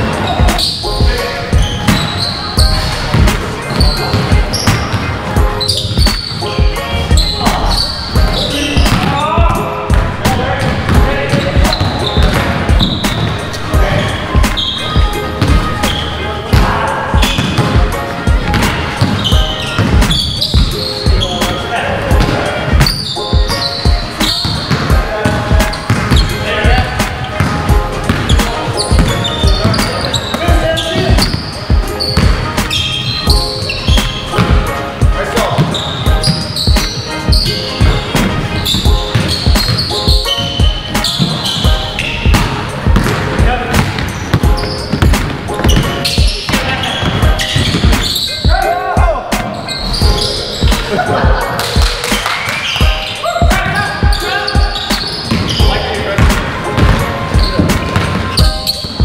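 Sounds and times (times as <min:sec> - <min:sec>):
music: 0:00.0 - 0:59.0
voices: 0:00.1 - 0:59.0
basketball dribbling on hardwood: 0:42.3 - 0:48.0, 0:56.2 - 0:58.6.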